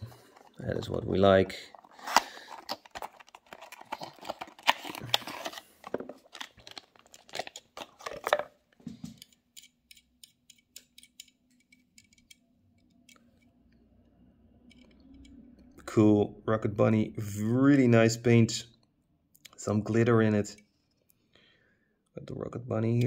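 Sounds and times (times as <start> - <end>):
packaging crinkling and tearing: 0.1 - 8.5
faint clicks of handling: 1.7 - 13.6.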